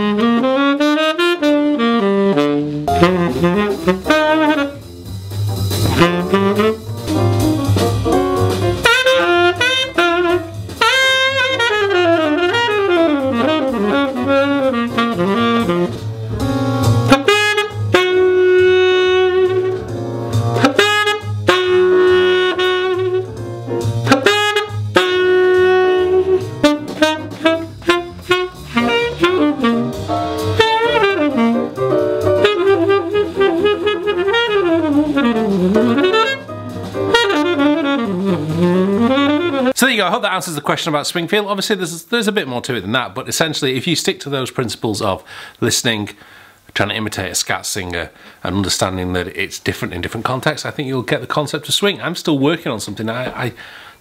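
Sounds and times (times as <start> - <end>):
tenor saxophone jazz solo: 0.0 - 39.9.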